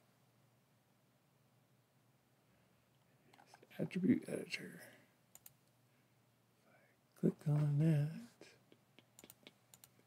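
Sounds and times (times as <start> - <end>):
faint computer mouse clicks: 5.3 - 5.7, 9.1 - 10.0.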